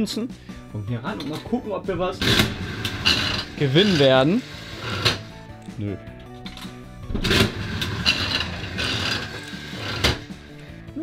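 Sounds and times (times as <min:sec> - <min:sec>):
reels spinning with mechanical whirring: 0:02.2 - 0:05.3, 0:07.1 - 0:10.3.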